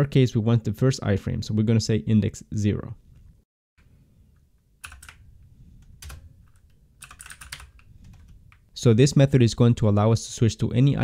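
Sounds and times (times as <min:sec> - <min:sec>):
computer keyboard typing: 0:04.8 - 0:05.2, 0:06.0 - 0:08.6.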